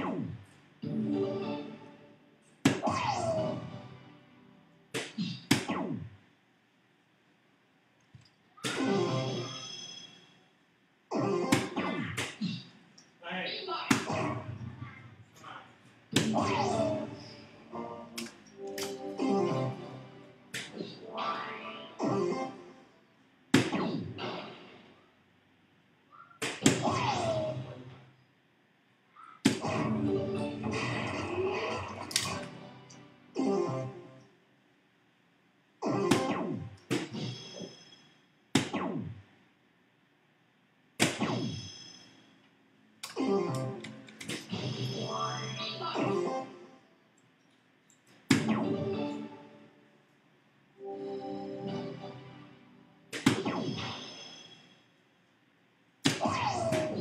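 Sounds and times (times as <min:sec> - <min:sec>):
darts hitting dartboard: 0:02.6 - 0:02.9, 0:04.9 - 0:06.0, 0:16.1 - 0:16.4, 0:20.5 - 0:20.9, 0:23.5 - 0:24.4, 0:26.4 - 0:26.9, 0:29.4 - 0:29.7, 0:38.5 - 0:39.0, 0:41.0 - 0:41.6, 0:48.3 - 0:48.6, 0:53.1 - 0:53.7, 0:56.0 - 0:57.0.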